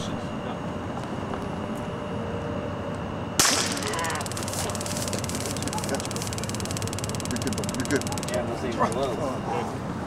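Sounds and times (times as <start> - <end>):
taser clicking crackle: 3.4 - 9.1
taser crack: 3.4 - 9.1.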